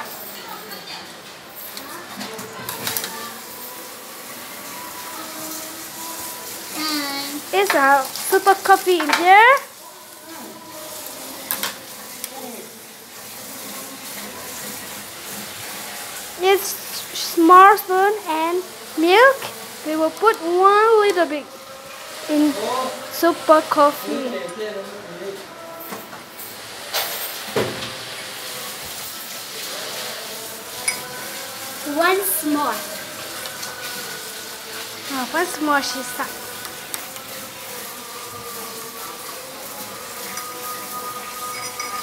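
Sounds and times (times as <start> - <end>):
spoon clinking against glass: 30.8 - 31.2, 41.2 - 42.0.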